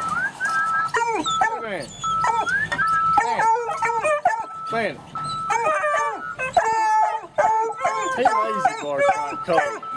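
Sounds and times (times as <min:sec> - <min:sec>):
hound pups baying: 0:00.4 - 0:09.9.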